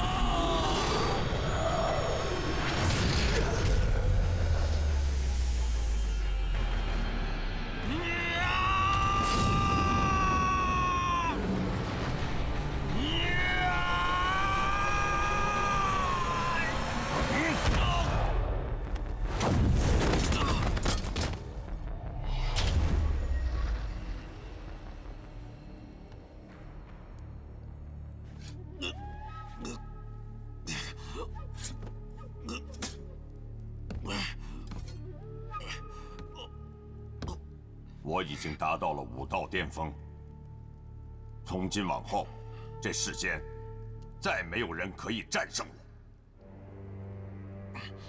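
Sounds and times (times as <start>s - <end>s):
background music with low drone: 0.0s - 48.0s.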